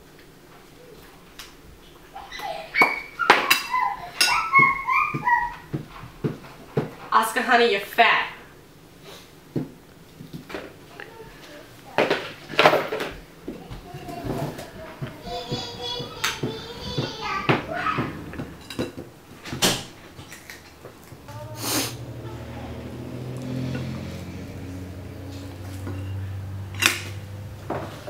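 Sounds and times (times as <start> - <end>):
high-pitched whimpering cries: 2.2 - 5.8
cutlery clinking on plates: 2.8 - 5.4, 18.3 - 20.8.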